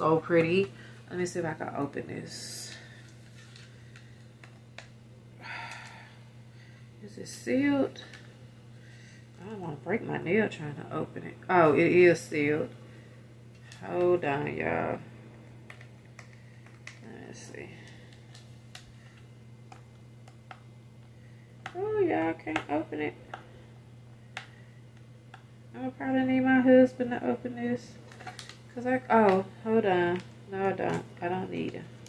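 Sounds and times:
low steady hum: 0.0 - 32.0.

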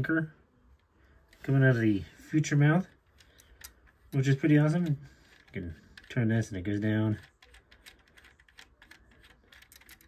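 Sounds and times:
plastic winch clicking: 7.0 - 10.0.

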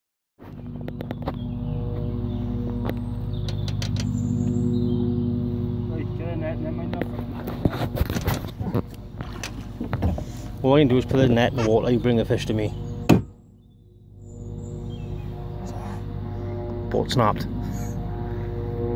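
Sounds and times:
low motor drone: 0.4 - 18.9.

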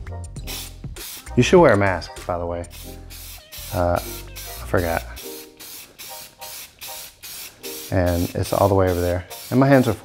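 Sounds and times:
aerosol spray can hissing: 0.4 - 1.4, 2.7 - 10.0.

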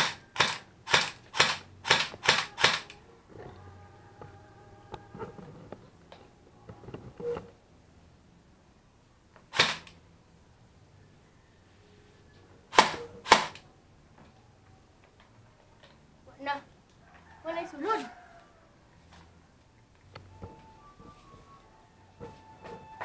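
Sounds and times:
airsoft rifle shots: 0.0 - 2.9, 9.5 - 10.0, 12.7 - 13.6.

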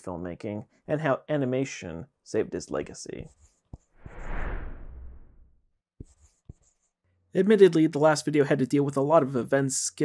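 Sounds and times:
whooshing rush: 4.0 - 5.5.

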